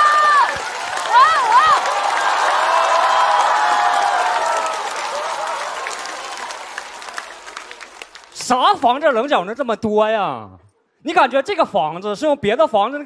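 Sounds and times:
audience applauding: 0.0 - 8.9.

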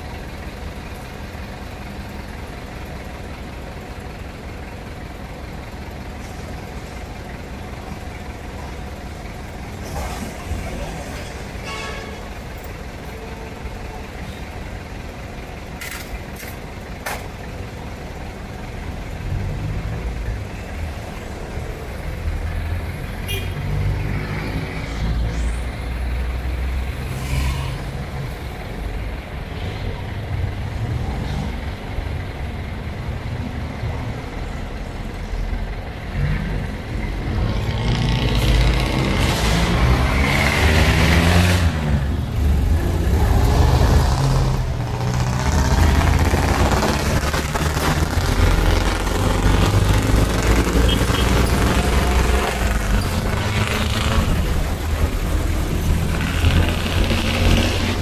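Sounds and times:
diesel engine idling and revving: 0.0 - 58.0.

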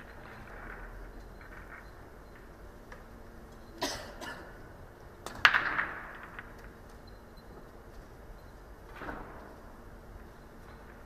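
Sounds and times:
person coughing: 3.8 - 4.6.

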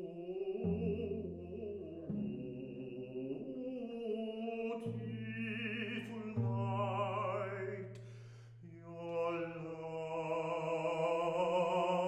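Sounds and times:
baritone singing: 0.0 - 12.0.

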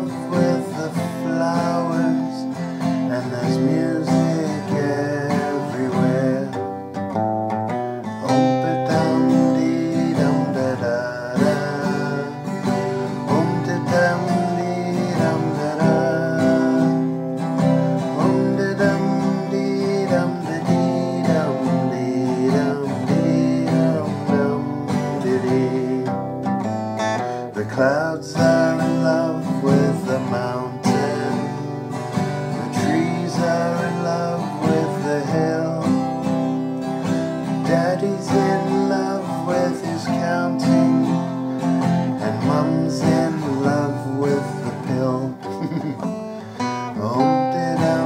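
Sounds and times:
twelve-string acoustic guitar: 0.0 - 48.0.

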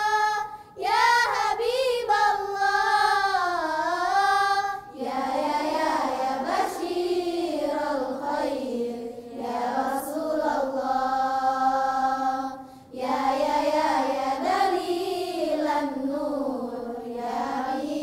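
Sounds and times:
girls singing in unison: 0.0 - 18.0.

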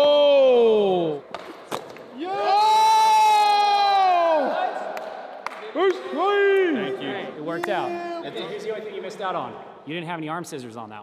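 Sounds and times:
men shouting and whooping: 2.2 - 5.0.

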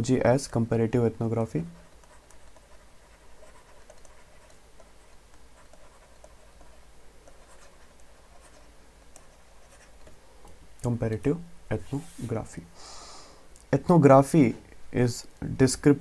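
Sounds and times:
stylus scratching on tablet: 1.4 - 10.2.

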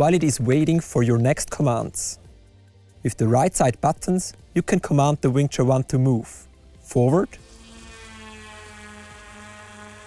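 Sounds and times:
drone propellers humming: 6.4 - 10.0.

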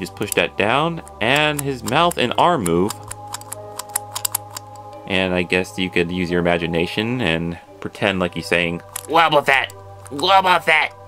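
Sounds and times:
soft background music: 0.0 - 11.0
plastic toy lever clicks: 1.3 - 4.8, 8.8 - 9.1.

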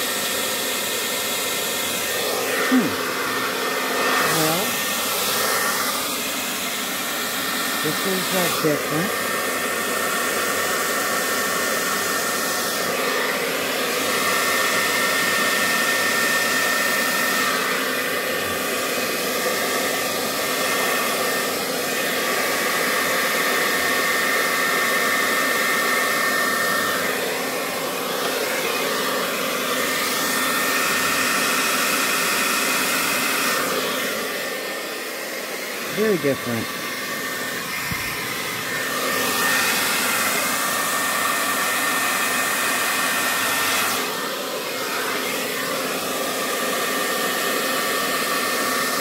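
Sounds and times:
hair dryer whining: 0.0 - 49.0.

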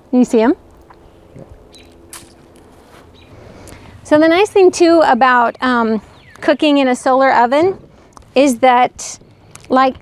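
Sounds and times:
faint handling rustles: 2.4 - 4.0.

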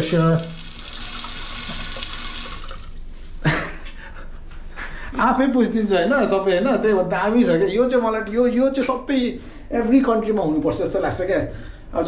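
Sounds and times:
bidet nozzle spraying water: 0.4 - 2.9.

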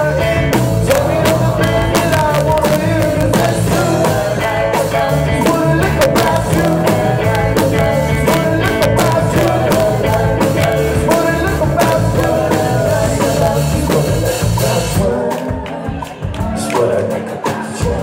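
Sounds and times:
drum kit beat: 0.0 - 18.0
electric guitar: 0.0 - 18.0
keyboard: 0.0 - 18.0.

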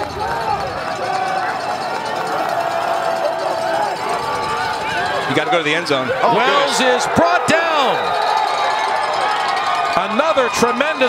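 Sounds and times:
indistinct shouting: 0.0 - 11.0
stadium crowd din: 0.0 - 11.0.

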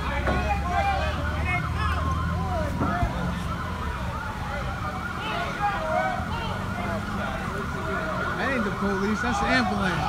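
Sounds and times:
ambulance siren yelping: 0.0 - 10.0.

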